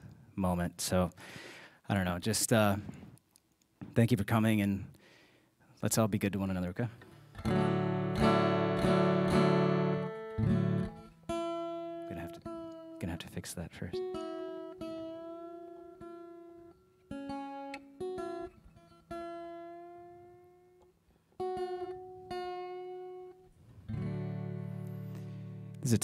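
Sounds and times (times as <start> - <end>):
guitar strings plucked: 7.0 - 26.0
strummed guitar chord: 7.4 - 13.4, 21.4 - 26.0.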